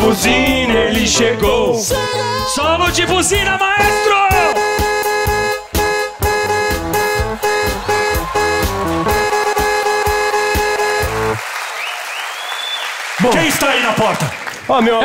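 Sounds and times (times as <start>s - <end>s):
electronic keyboard solo: 3.8s - 11.4s
audience applause: 7.2s - 15.0s.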